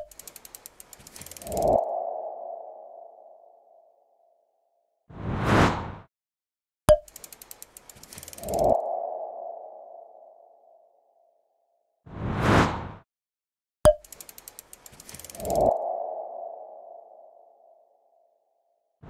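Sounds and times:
quick run of ticks: 0.0 - 1.8, 7.0 - 8.8, 14.0 - 15.8.

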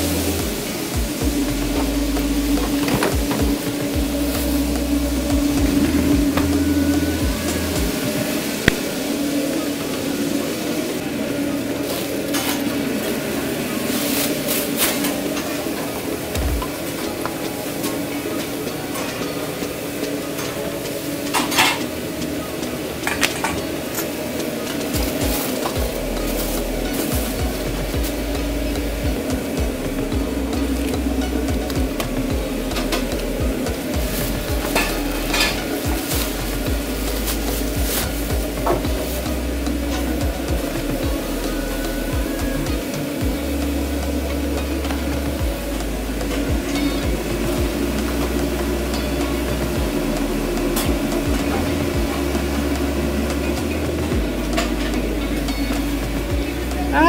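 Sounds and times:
griddle sizzling: 0.0 - 57.0
steady kitchen hum: 0.0 - 57.0
utensils clattering: 0.0 - 57.0.

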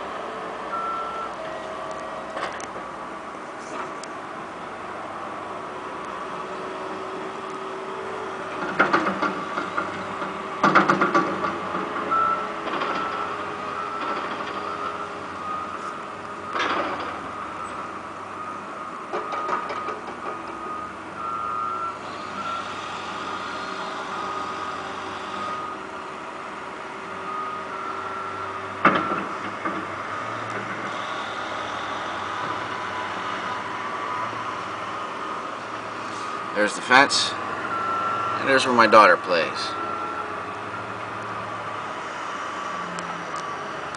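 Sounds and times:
heavy construction machines running: 0.0 - 43.9.

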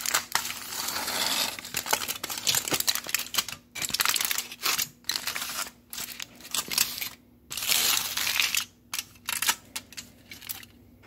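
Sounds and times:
foil wrapper crinkling: 0.0 - 10.8.

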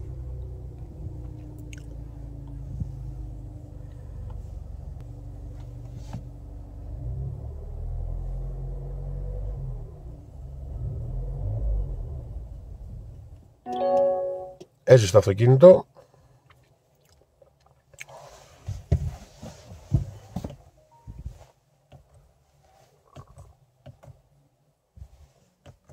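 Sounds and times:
car engine idling: 0.0 - 6.9
dashboard warning tone: 13.7 - 14.6.

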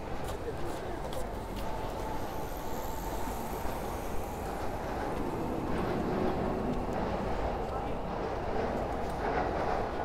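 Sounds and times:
city street rumble: 0.0 - 10.0.

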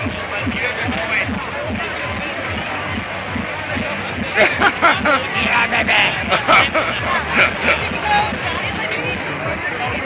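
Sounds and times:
amplified music with bass beat: 0.0 - 10.0
crowd talking and shouting: 0.0 - 10.0.

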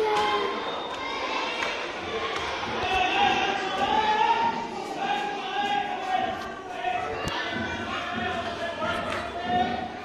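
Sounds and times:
echoing voices: 0.0 - 10.0.

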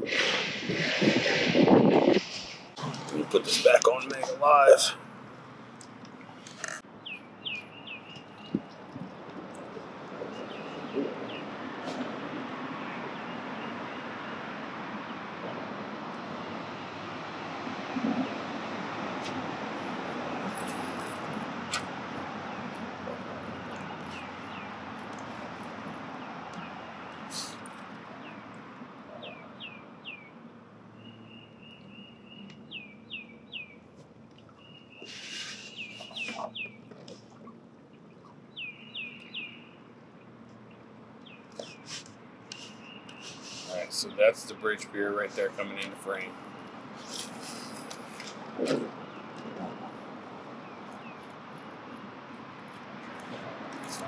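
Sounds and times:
rushing background noise: 0.0 - 54.0.

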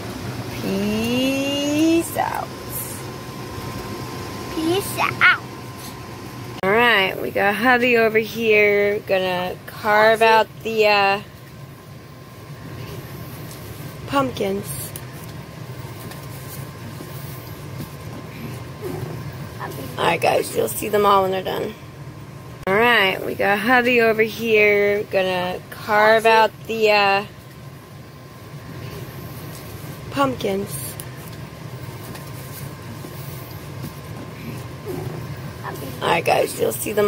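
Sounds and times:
low background hum: 0.0 - 37.0.

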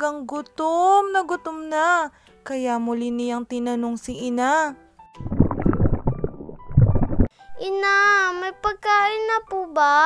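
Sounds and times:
cartoon stomach growling: 5.2 - 7.3.

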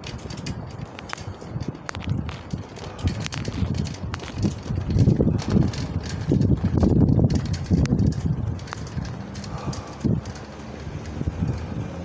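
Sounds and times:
footsteps: 0.0 - 11.2.

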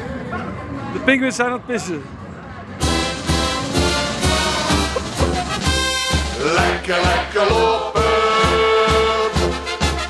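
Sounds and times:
brass band music: 2.8 - 10.0.

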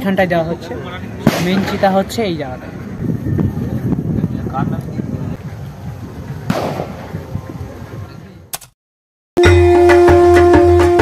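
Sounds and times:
firecracker bang: 1.2 - 1.8, 6.5 - 7.1.

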